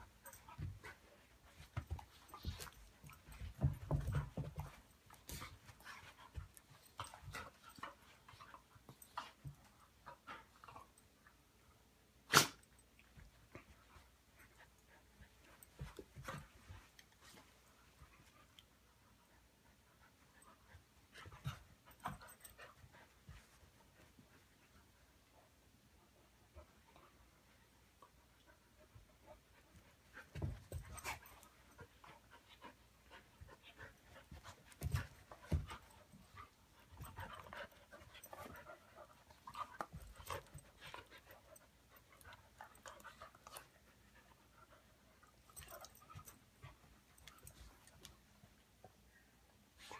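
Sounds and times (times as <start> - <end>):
dogs panting: 28.4 - 48.0.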